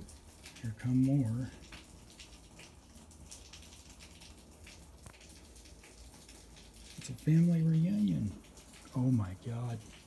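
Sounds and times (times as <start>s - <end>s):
light scattered crackles: 0.0s - 10.0s.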